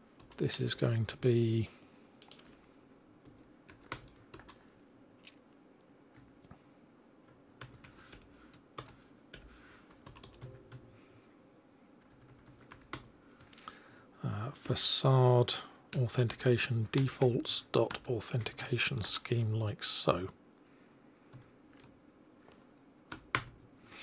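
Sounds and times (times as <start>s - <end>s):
computer keyboard typing: 2.2s - 2.6s, 3.2s - 4.6s, 7.6s - 10.9s, 12.0s - 13.4s, 23.1s - 23.6s.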